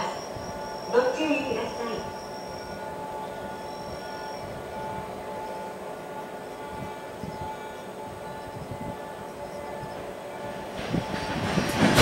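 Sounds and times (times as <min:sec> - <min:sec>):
train engine humming: 0:00.0 - 0:12.0.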